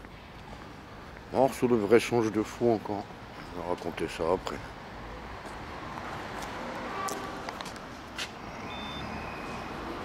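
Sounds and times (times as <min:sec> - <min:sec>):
street traffic: 0:00.0 - 0:10.0
thin high beep-like tone: 0:08.6 - 0:09.6.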